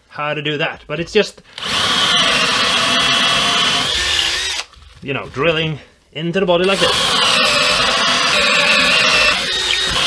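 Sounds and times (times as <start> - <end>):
electric drill boring into wood: 1.6 - 4.7, 6.6 - 10.0.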